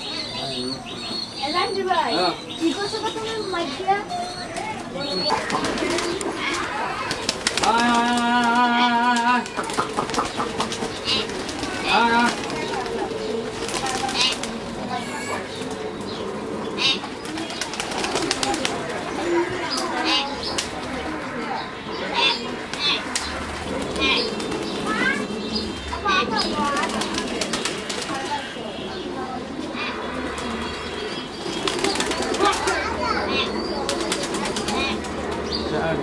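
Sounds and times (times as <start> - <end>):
bird calls and chirps: 0.0 - 8.0, 9.5 - 35.8
pigeons cooing: 0.0 - 36.0
pigeons pecking grain: 3.7 - 35.8.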